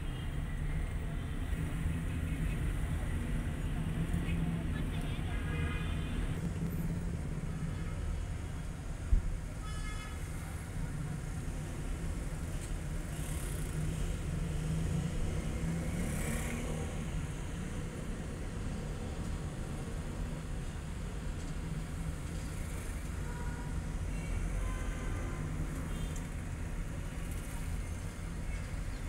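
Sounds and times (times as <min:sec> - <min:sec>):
road traffic rumble: 0:00.0 - 0:29.0.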